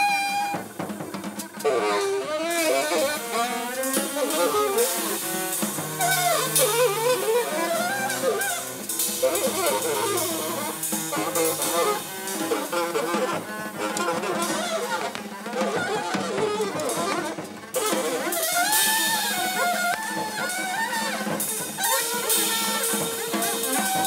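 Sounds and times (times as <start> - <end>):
drum kit with cymbals: 0.0 - 24.0
saxophone squealing: 0.0 - 24.0.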